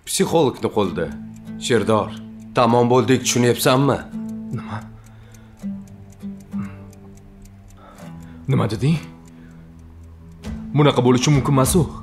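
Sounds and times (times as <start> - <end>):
background music with plucked strings: 0.0 - 12.0
ticking beat: 0.0 - 12.0.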